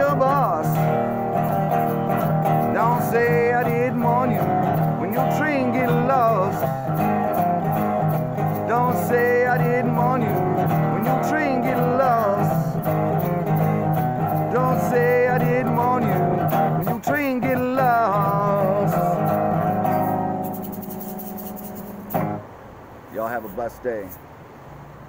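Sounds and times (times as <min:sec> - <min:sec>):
resonator guitar strummed: 0:00.0 - 0:22.5.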